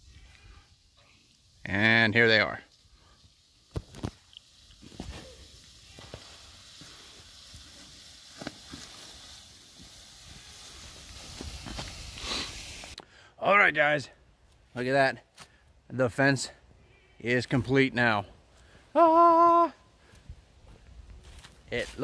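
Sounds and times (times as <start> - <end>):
footsteps swishing through grass: 20.1 - 22.0.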